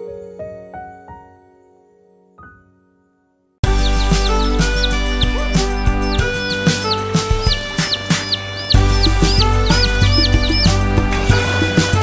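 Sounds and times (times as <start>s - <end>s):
high bird-like chirping tweets: 3.6s - 11.1s
upbeat children's song: 3.6s - 12.0s.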